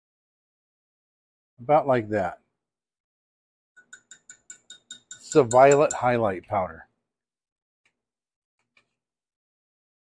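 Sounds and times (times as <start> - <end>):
metal spoon tapping glass cup: 3.8 - 6.2.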